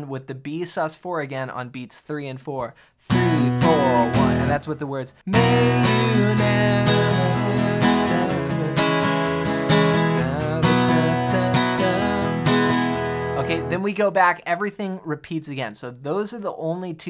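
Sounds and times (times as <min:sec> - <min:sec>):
acoustic guitar strummed chords: 0:03.1 - 0:04.6, 0:05.3 - 0:13.8.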